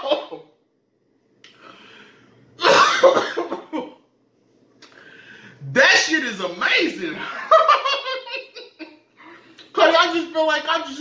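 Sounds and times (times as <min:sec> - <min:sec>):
man coughing: 0:02.6 - 0:04.0.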